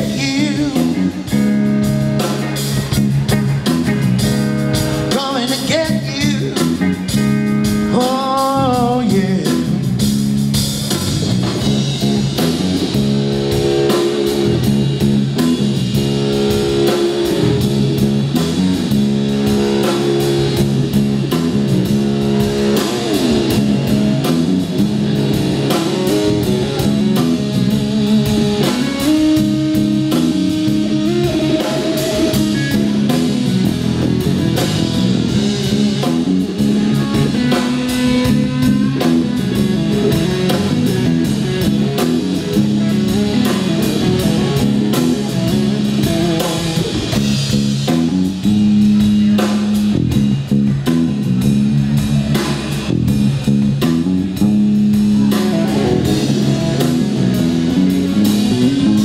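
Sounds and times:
drum kit: 0.0 - 59.0
electric bass: 0.0 - 59.0
electric guitar: 0.0 - 59.0.

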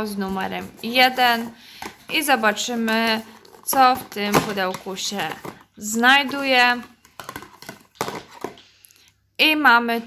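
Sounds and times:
small clicks and scrapes of box: 0.6 - 4.3.

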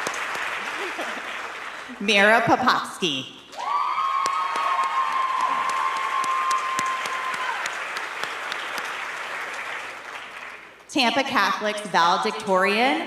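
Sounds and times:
audience applause: 0.0 - 2.0, 3.6 - 10.8.

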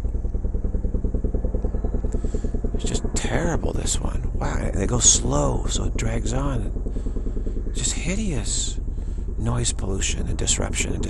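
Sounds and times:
helicopter rotor beating: 0.0 - 11.0.

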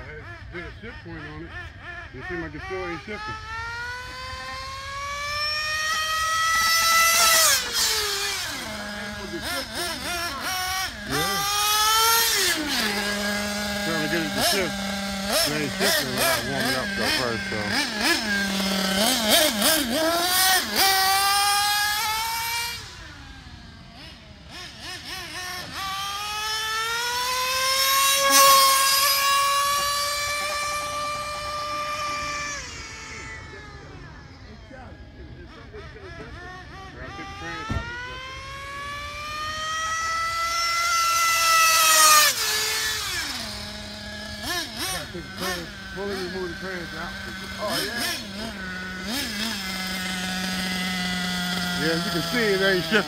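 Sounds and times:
rc car nitro engine revving: 0.1 - 53.0.

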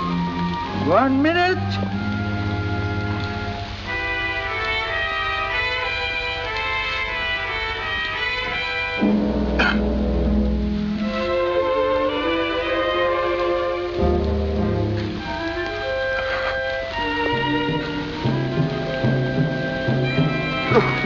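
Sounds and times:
orchestral strings playing chords: 0.0 - 21.0.

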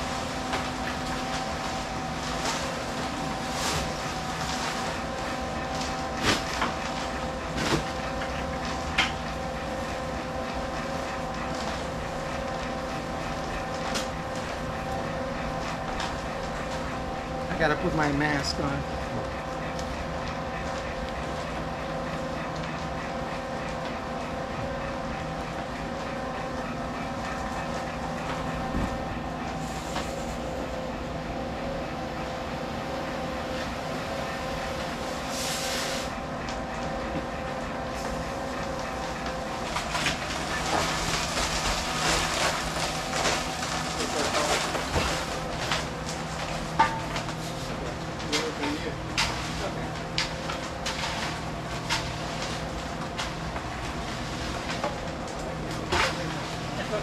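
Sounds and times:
concrete mixer humming: 0.0 - 57.0.

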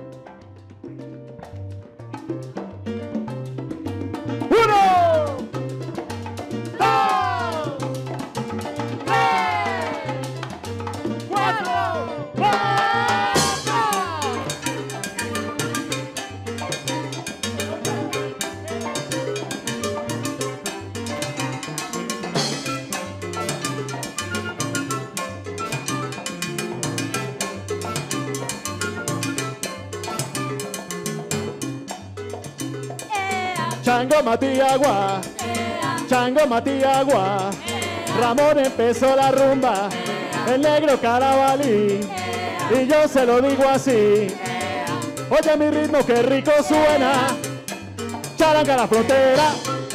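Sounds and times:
congas and timbales: 0.0 - 49.9
electric bass: 0.0 - 49.9
salsa band playing: 0.0 - 49.9.

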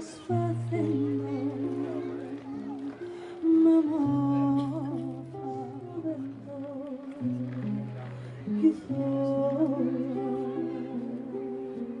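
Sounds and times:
acoustic guitar: 0.0 - 12.0
woman singing: 0.0 - 12.0.

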